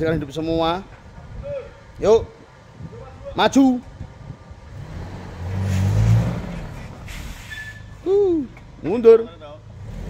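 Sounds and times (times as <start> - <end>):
car engine at low speed: 0.9 - 10.0.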